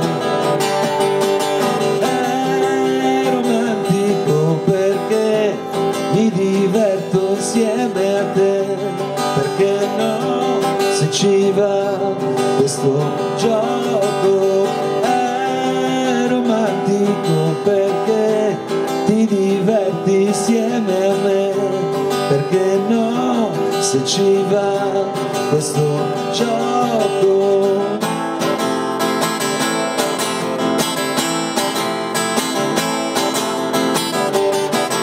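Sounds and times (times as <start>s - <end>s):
acoustic guitar strumming: 0.0s - 35.0s
man singing: 1.4s - 28.6s.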